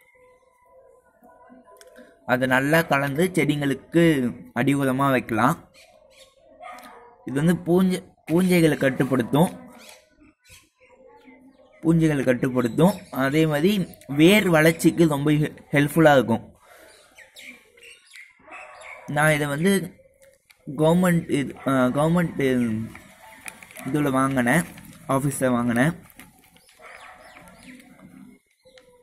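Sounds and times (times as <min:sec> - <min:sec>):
faint small birds chirping: 0:00.0 - 0:02.4, 0:03.4 - 0:29.0
faint background noise: 0:00.0 - 0:29.0
man speaking: 0:02.3 - 0:05.6, 0:07.3 - 0:09.7, 0:11.8 - 0:16.6, 0:19.1 - 0:20.0, 0:20.7 - 0:26.2.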